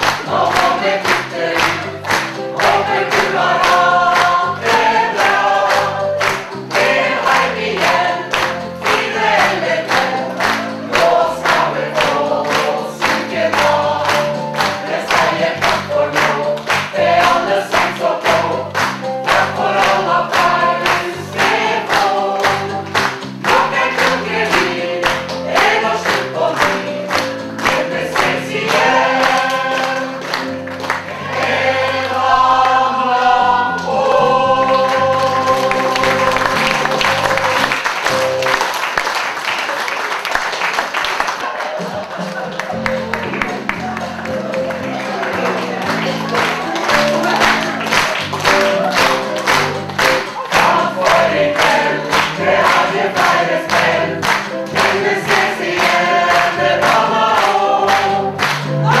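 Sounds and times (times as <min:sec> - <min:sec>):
cast singing as a choir: 0:00.0 - 0:30.4, 0:31.1 - 0:37.8, 0:50.3 - 0:59.0
audience applause: 0:00.0 - 0:32.4, 0:33.8 - 0:59.0
musical accompaniment with steady beat: 0:00.0 - 0:38.8, 0:41.6 - 0:59.0.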